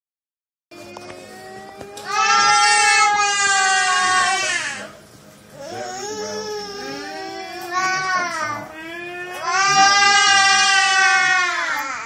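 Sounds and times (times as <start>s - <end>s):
electric fan humming: 0.7s - 12.0s.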